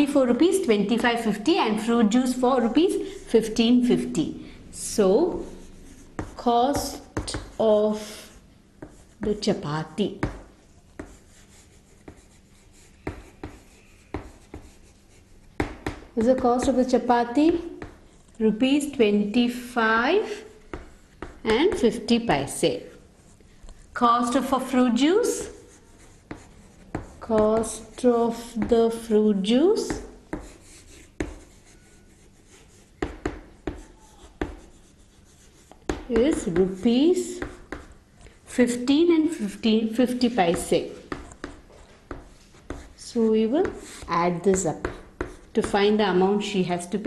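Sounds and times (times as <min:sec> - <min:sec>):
chalk scratching on chalkboard: 0:05.0 - 0:19.5, 0:20.2 - 0:38.0, 0:38.6 - 0:47.0
chalk tapping on chalkboard: 0:05.3 - 0:18.9, 0:20.2 - 0:22.9, 0:25.0 - 0:38.8, 0:40.0 - 0:46.3.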